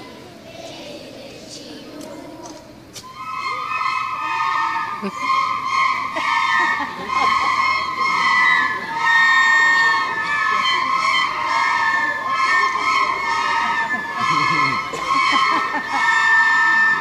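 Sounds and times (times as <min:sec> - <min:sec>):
crowd murmur: 0:00.0 - 0:17.0
children playing recorders: 0:01.6 - 0:17.0.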